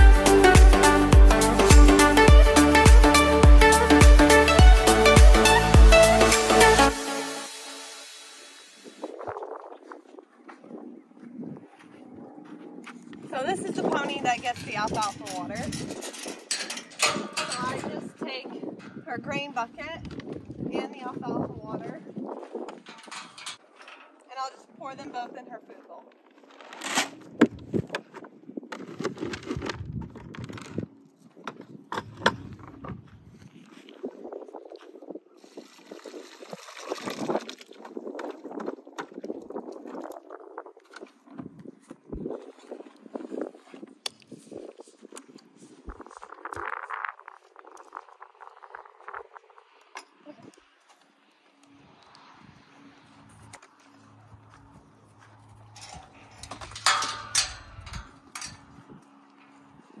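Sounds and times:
plastic buckets being handled: 26.1s - 33.1s
water pouring: 35.4s - 38.6s.

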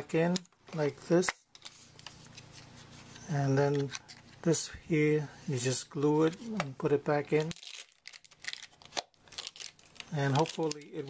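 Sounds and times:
paper label crinkling: 7.2s - 11.0s
plastic cover being fitted: 7.3s - 11.0s.

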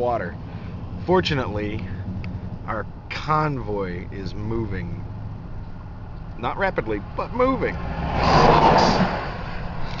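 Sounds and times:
car road rumble: 0.0s - 10.0s
truck passing: 0.0s - 10.0s.

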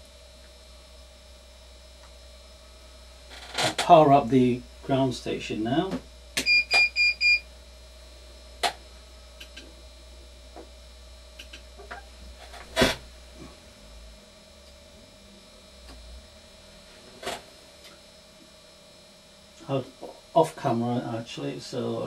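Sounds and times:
faint electrical hum: 0.0s - 22.0s
short electronic beeps: 6.4s - 7.4s
sharp clicks: 11.4s - 11.6s.

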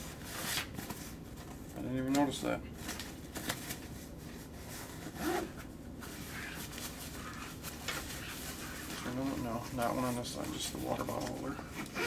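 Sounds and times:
fabric rustling: 0.0s - 12.0s
zipper being worked: 5.0s - 5.6s.

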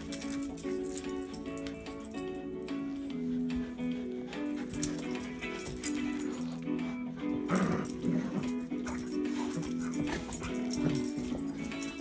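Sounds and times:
christmas music: 0.0s - 12.0s
dogs vocalizing while playing: 0.0s - 12.0s.

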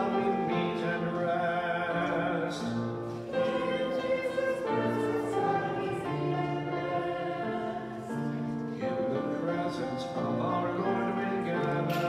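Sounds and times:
slow choral music: 0.0s - 12.0s.

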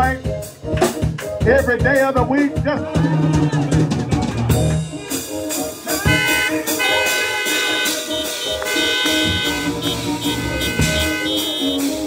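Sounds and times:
drum kit with cymbals: 0.0s - 12.0s
held keyboard chords: 0.0s - 12.0s.

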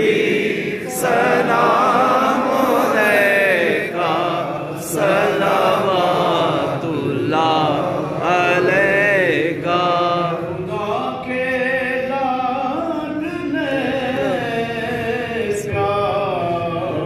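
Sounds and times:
man chanting into microphone: 3.8s - 17.0s.

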